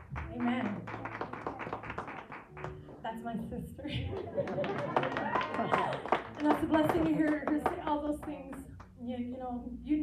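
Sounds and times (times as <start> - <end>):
congregation clapping: 0.0 - 3.0, 4.4 - 8.9.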